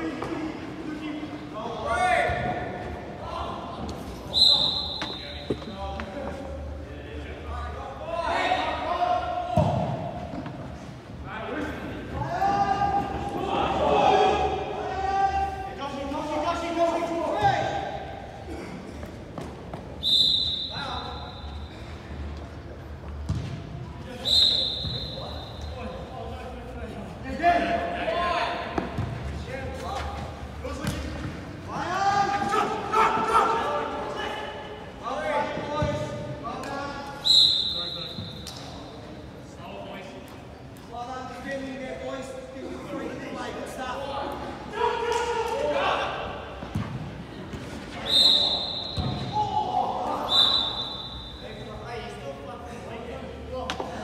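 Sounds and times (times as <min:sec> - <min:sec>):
referee's whistle blasts: 0:04.3 - 0:05.6, 0:20.0 - 0:21.7, 0:24.2 - 0:25.8, 0:37.2 - 0:38.5, 0:48.0 - 0:49.4, 0:50.2 - 0:51.6
players shouting: 0:11.9 - 0:18.3, 0:31.7 - 0:35.8, 0:48.0 - 0:51.5.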